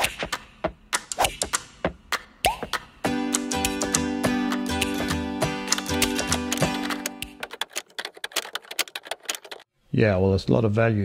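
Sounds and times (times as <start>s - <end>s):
rapid sharp clicks and knocks: 4.8s - 9.7s.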